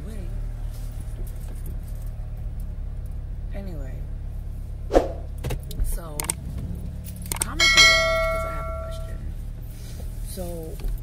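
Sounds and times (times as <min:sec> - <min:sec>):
road rumble inside car: 0:00.0 - 0:11.0
bright bell chime: 0:07.5 - 0:09.2.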